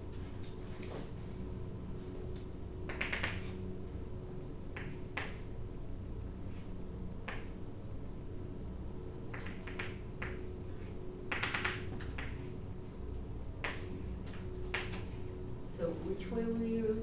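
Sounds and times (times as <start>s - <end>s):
faint room hum: 0.0s - 17.0s.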